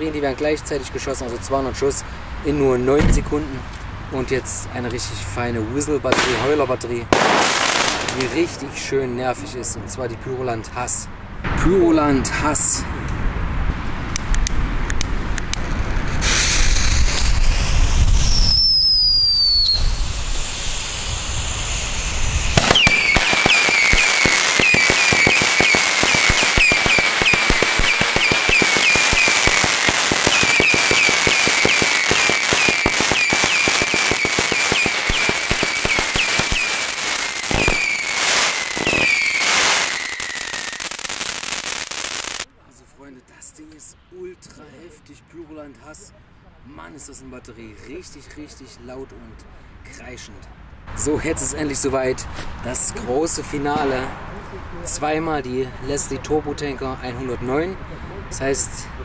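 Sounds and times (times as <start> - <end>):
sharp firework cracks: 6.1 - 8.7, 16.2 - 42.5
shrieking firework whistles: 16.2 - 42.4
falling whistle: 18.2 - 29.6, 30.3 - 41.0
scattered pops: 22.5 - 42.5.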